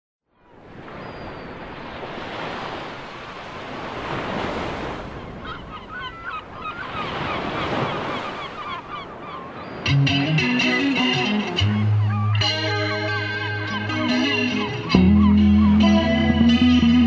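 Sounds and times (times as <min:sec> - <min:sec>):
ocean surf: 0:00.4 - 0:17.0
birds chirping: 0:00.8 - 0:02.1, 0:05.2 - 0:17.0
electric guitar: 0:09.9 - 0:17.0.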